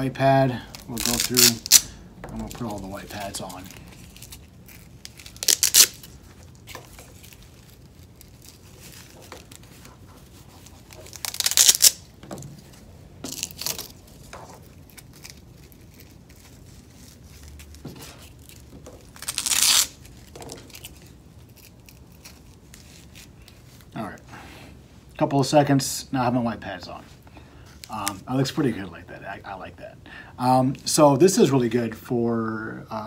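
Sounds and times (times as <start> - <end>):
handling rustle: 0.6 - 24.0
velcro ripping: 0.7 - 12.2, 13.2 - 23.9.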